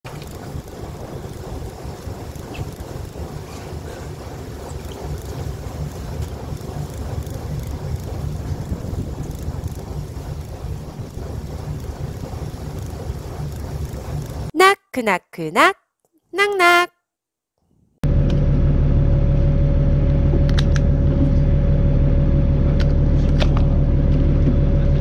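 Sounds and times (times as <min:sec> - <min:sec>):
wind buffeting microphone: 0:00.4 - 0:13.9.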